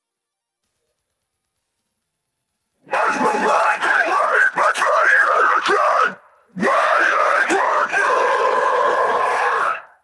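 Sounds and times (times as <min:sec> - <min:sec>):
harsh screamed vocal: 0:02.8 - 0:10.0.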